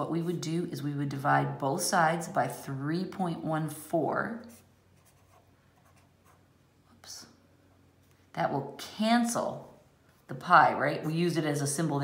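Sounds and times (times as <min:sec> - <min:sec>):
marker writing on paper: 0:04.4 - 0:06.4.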